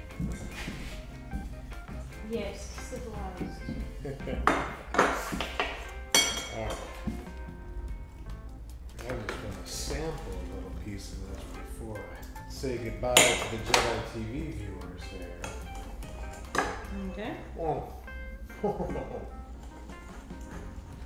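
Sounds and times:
background music: 0:00.0 - 0:21.0
cutlery clinking on metal tray: 0:04.9 - 0:06.9.

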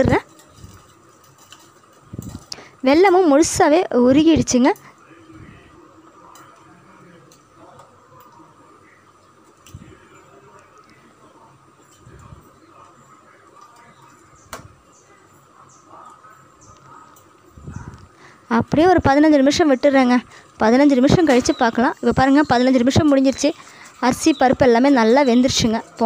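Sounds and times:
pot boiling with bubbling: 0:00.0 - 0:26.0.

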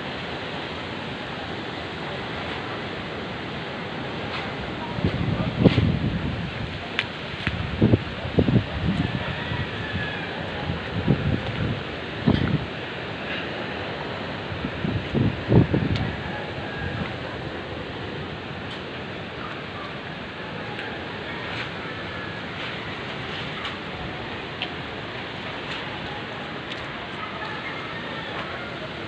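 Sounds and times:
wind gusts buffeting microphone: 0:00.0 - 0:29.0
strong wind rushing: 0:01.6 - 0:26.6.

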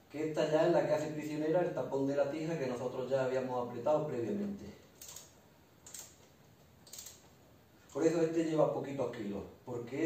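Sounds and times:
wrench clicking: 0:05.0 - 0:07.2.

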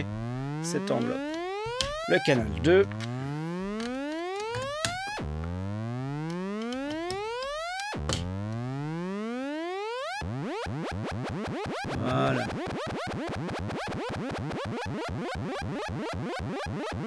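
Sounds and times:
buzzy synth tone sweeping: 0:00.0 - 0:14.7.

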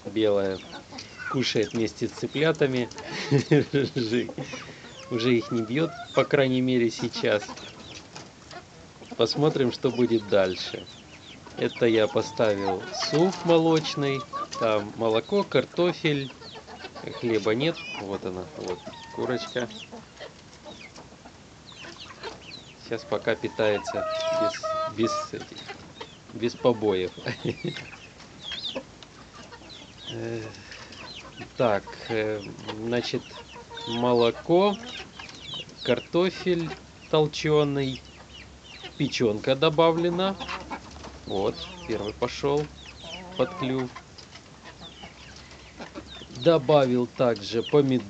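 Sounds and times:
beaks tapping: 0:00.0 - 0:48.0
chicks peeping: 0:00.0 - 0:48.0.

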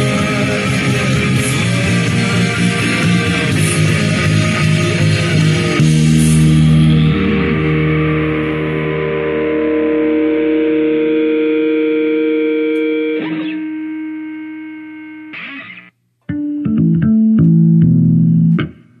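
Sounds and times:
electric bass playing: 0:00.0 - 0:19.0
rock song recording: 0:00.0 - 0:19.0.

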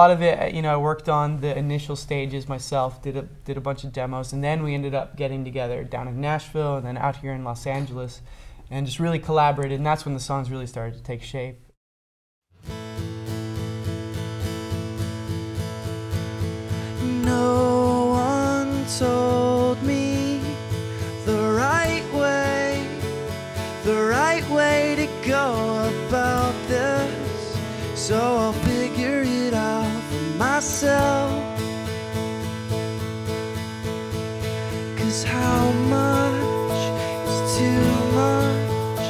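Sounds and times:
acoustic guitars strummed: 0:12.6 - 0:39.0
man singing lead: 0:17.0 - 0:23.1, 0:23.8 - 0:31.6, 0:34.8 - 0:39.0.

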